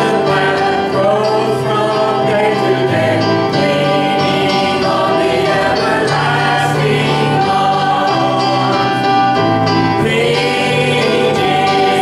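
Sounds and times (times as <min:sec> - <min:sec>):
group singing a hymn: 0:00.0 - 0:12.0
keyboard accompaniment: 0:00.0 - 0:12.0.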